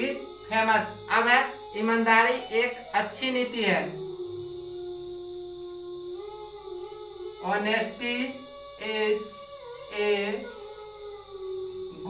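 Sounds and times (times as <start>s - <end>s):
man humming a steady note: 0.0s - 12.0s.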